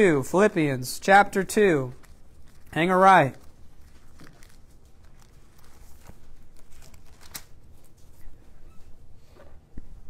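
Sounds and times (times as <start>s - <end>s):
book pages turning: 1.8s - 8.3s.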